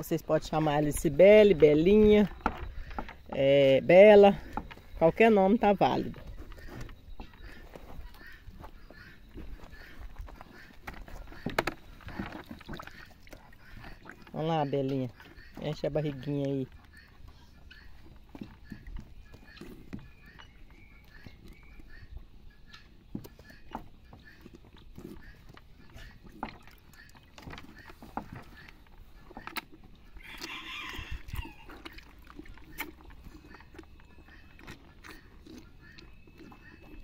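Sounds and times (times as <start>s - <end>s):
faint chickens: 2.1s - 37.0s
calf sucking and slurping: 24.3s - 37.0s.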